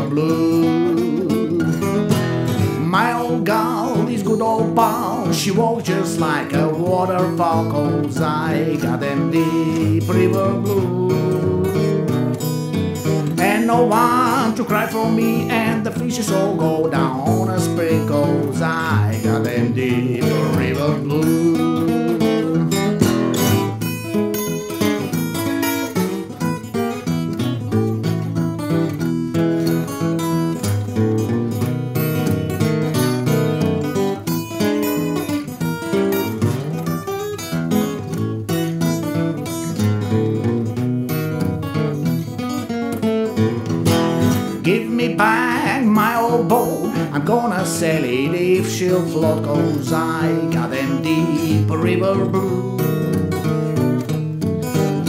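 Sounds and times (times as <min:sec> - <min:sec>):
fingerpicked acoustic guitar: 0:00.0 - 0:55.0.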